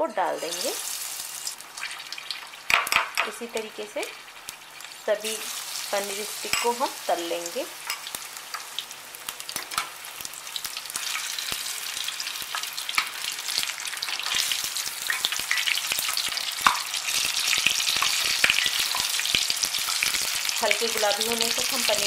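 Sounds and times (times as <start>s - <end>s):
food deep-frying in oil: 0.0s - 22.0s.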